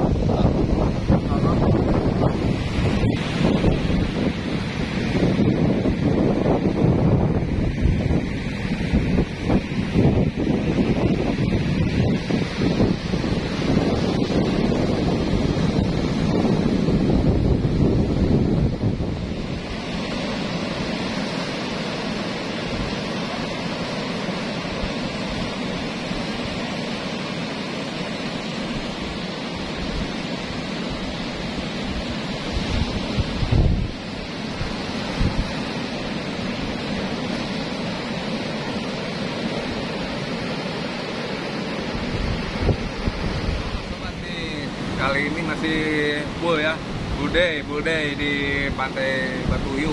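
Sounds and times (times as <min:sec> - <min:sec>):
surf breaking: 0:00.0 - 0:49.9
wind buffeting microphone: 0:00.0 - 0:49.9.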